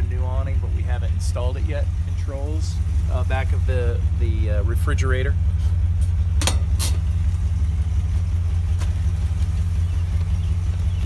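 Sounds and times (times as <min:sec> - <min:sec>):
engine humming steadily: 0:00.0 - 0:11.0.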